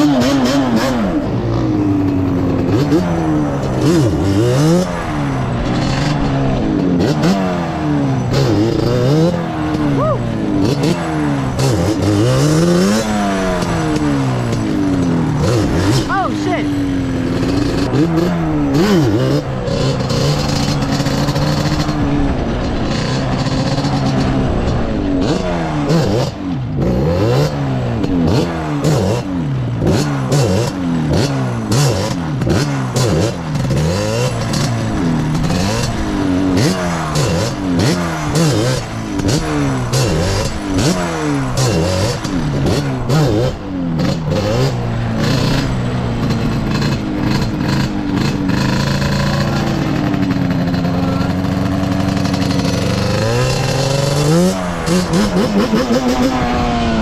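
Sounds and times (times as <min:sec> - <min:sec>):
two-stroke engine revving: 0:00.0 - 0:57.0.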